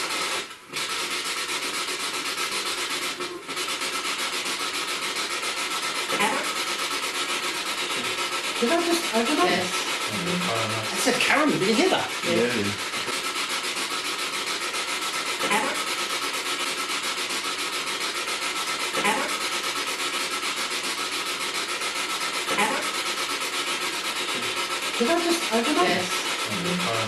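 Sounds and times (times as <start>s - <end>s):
snatches of voice: 5.9s - 6.7s, 7.8s - 13.2s, 15.4s - 16.0s, 18.9s - 19.5s, 22.4s - 23.2s, 24.2s - 27.0s
pulsing radio static: 6.0s - 6.7s, 7.8s - 13.5s, 15.3s - 16.1s, 18.9s - 19.6s, 22.5s - 27.0s.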